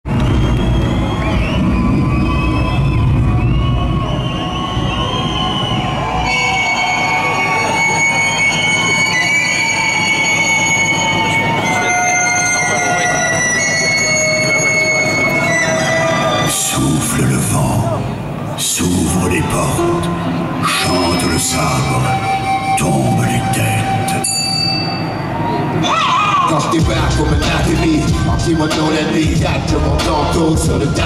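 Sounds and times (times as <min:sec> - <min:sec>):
music over sound system: 0:00.1 - 0:31.0.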